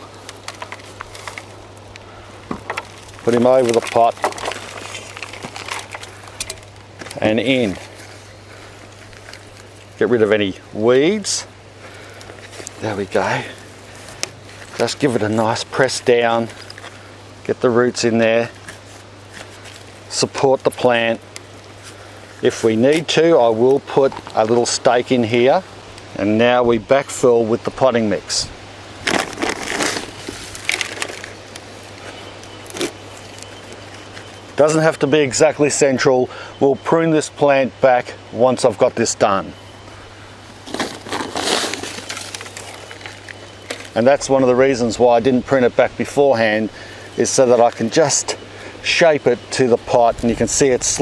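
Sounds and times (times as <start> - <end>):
potting mix crunching and scraping: 0.0 - 25.6, 29.0 - 51.0
steady low hum: 0.0 - 51.0.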